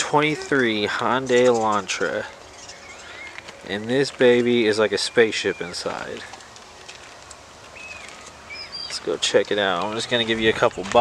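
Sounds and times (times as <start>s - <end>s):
outdoor background noise: 0.0s - 11.0s
high bird chirps: 2.5s - 3.4s, 7.7s - 9.0s.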